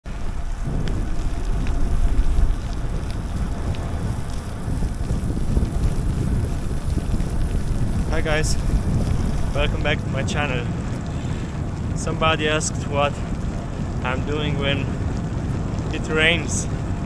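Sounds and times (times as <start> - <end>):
wind rumbling on microphone: 0.0 - 17.0
rain hiss: 0.1 - 17.0
faint ticks: 11.0 - 12.0.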